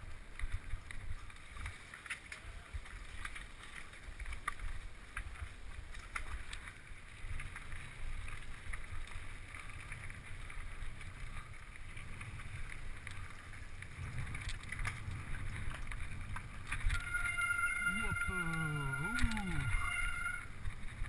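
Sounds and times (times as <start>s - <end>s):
wind rumble on microphone: 0.0s - 21.0s
bike clicks and rattles: 0.2s - 17.5s.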